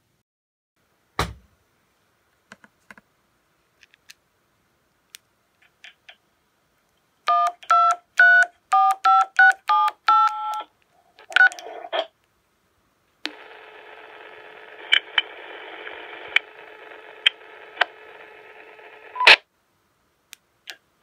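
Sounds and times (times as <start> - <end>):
two-tone keypad beeps: 7.3 - 10.6.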